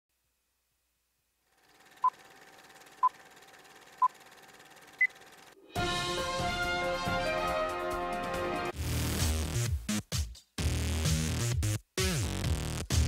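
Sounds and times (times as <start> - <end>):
intro music: 5.6 - 12.6.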